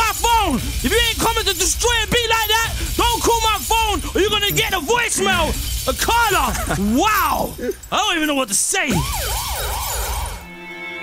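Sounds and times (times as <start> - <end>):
siren-like sound effect: 8.9 - 10.5.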